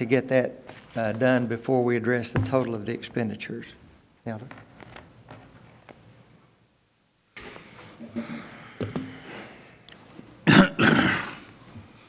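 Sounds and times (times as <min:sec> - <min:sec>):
person clearing throat: 0:10.4 - 0:11.5.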